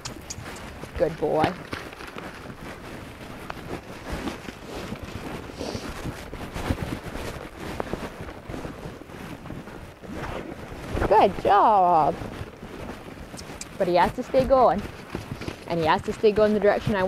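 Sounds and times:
horse hooves on wet turf: 0.0 - 17.0
wind buffeting microphone: 0.0 - 17.0.

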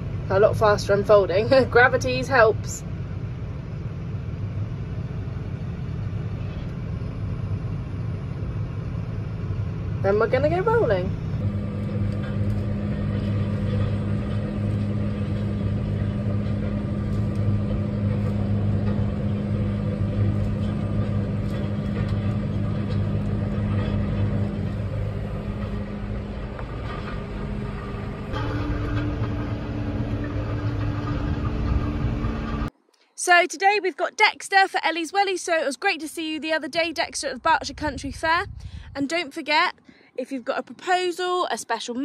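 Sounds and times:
tractor engine running: 0.0 - 32.8.

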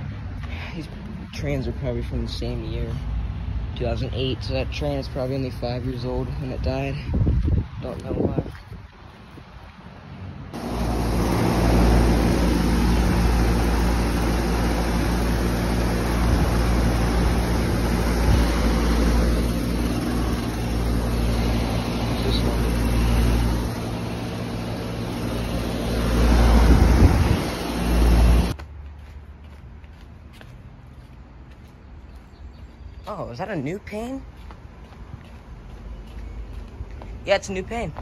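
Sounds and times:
compressor hum: 10.5 - 28.6
condenser fan rushing: 10.6 - 28.6.

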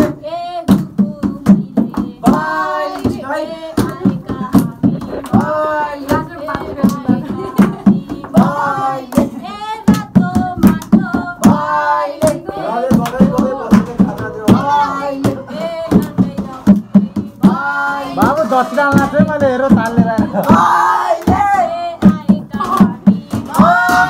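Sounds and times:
group singing: 0.0 - 24.0
rhythmic hand clapping: 0.0 - 24.0.

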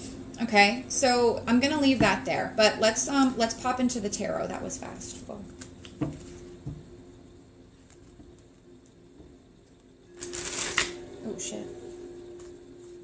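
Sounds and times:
cards shuffled by hand: 10.2 - 10.9
cards riffling: 10.2 - 11.0.

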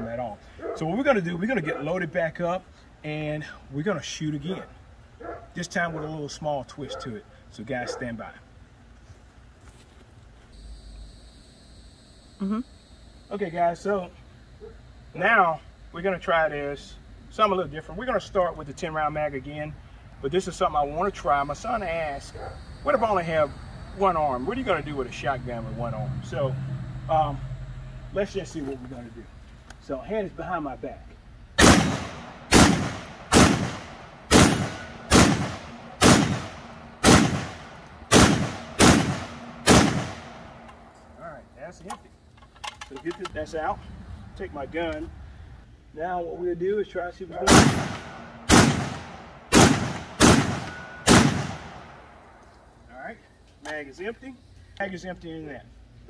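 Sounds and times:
steady high-pitched whine: 10.0 - 56.0
shotgun shots: 31.6 - 40.6, 47.5 - 52.0.

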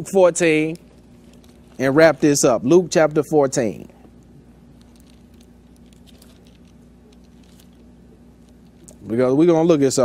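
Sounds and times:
low electrical hum: 0.0 - 10.0
pages being leafed through: 0.5 - 3.2, 4.7 - 9.1.

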